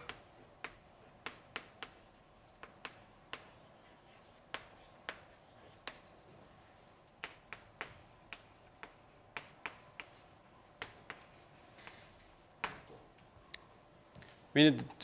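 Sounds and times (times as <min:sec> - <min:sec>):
chalk tapping on blackboard: 0:00.0 - 0:13.0.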